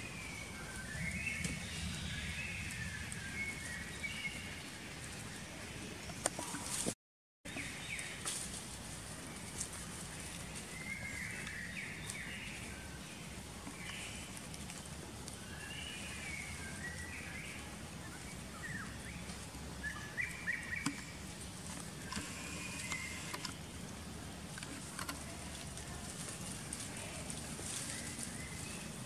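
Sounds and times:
low background hum: 7.5s - 29.0s
high chirping calls: 15.6s - 21.2s.

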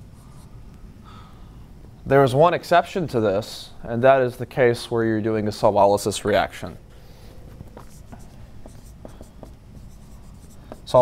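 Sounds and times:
marker scratching on whiteboard: 7.5s - 11.0s.

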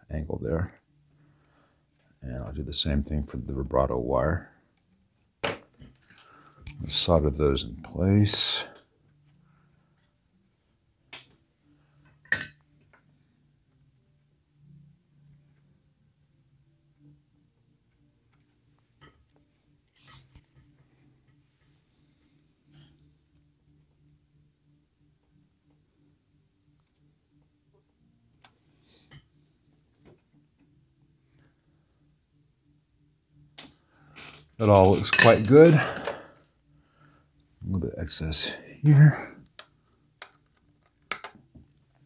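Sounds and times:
faint low hum: 0.0s - 42.0s.

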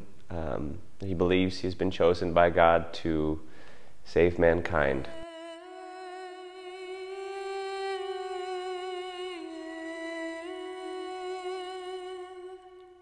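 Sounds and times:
person humming long notes: 5.0s - 13.0s.

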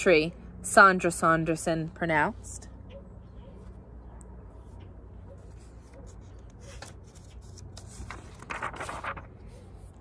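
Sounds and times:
book page turning: 5.4s - 10.0s.

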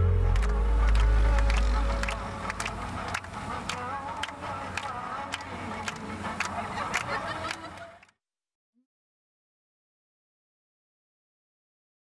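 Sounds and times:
low held music note: 0.0s - 2.5s.

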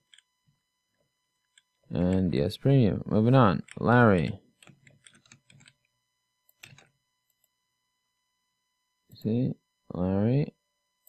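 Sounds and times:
computer keyboard keystrokes: 3.6s - 5.8s, 6.5s - 7.4s.

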